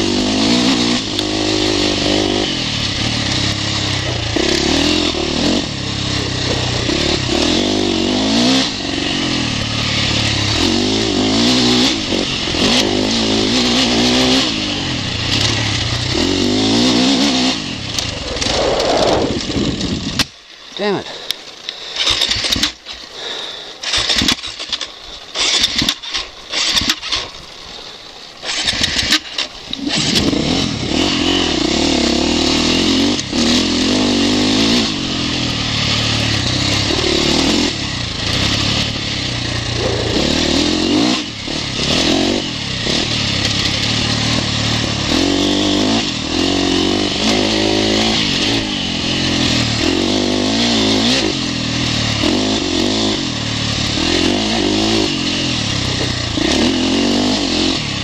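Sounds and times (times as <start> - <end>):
motocross engine revving: 0.0 - 21.0, 22.0 - 27.3, 28.4 - 58.0.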